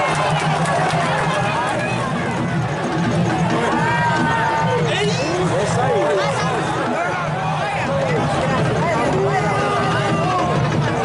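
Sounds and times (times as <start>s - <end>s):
stadium crowd shouting: 0.0s - 11.0s.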